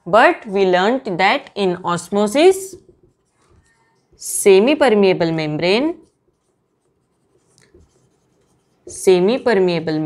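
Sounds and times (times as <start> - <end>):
marker writing on whiteboard: 1.9 - 10.0.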